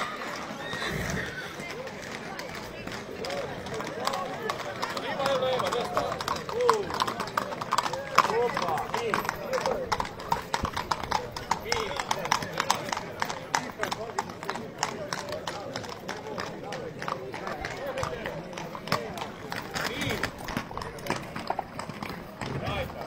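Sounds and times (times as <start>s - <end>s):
crowd voices: 0.0s - 23.0s
horse hooves clopping on asphalt: 0.2s - 23.0s.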